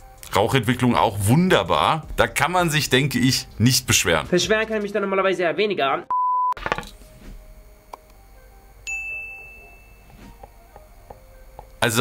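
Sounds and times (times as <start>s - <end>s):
notification ding: 8.9s - 10.1s.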